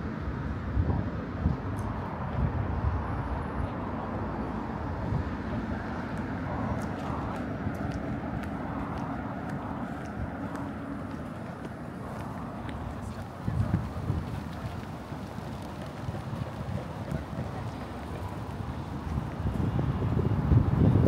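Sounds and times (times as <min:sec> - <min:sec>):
traffic rumble: 0:00.0 - 0:21.0
wind buffeting microphone: 0:00.0 - 0:21.0.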